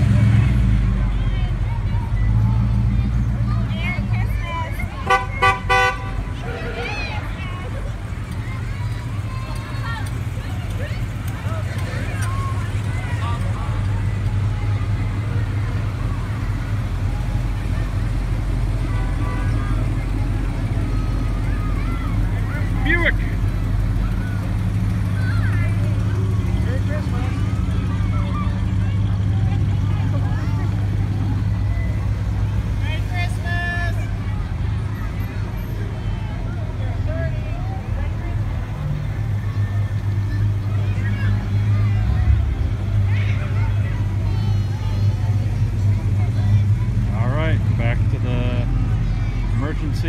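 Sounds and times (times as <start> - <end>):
car engines running slowly: 0.0 - 50.0
onlookers chattering: 0.0 - 50.0.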